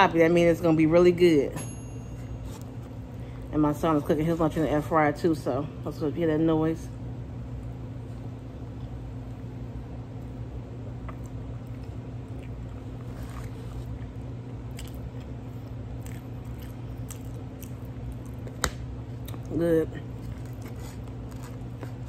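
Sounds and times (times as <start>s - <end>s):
air fryer humming: 0.0s - 22.0s
close chewing: 11.0s - 22.0s.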